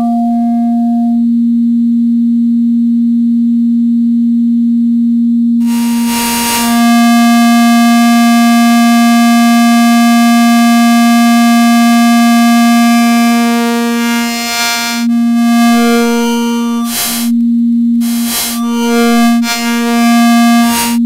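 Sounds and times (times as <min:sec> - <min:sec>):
noisy shifting burst: 0:05.6 - 0:17.4, 0:18.0 - 0:21.0
oscillator drone: 0:05.6 - 0:21.0.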